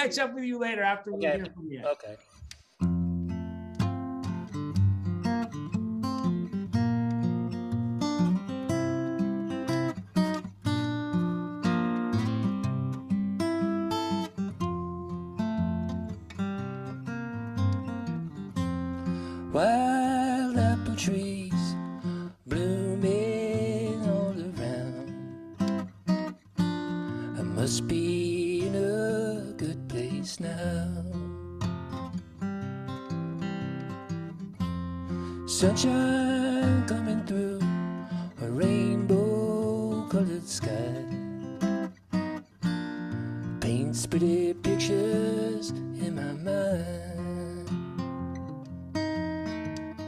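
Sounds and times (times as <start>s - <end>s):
acoustic guitar playing: 0.0s - 1.6s, 2.2s - 50.0s
man singing: 19.4s - 25.3s, 27.4s - 31.3s, 35.4s - 41.5s, 43.6s - 47.8s.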